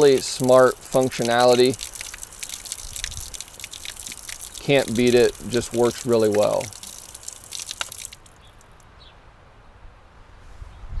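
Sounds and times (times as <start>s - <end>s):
water dripping: 0.0s - 8.8s
water splashing on ground: 0.0s - 8.8s.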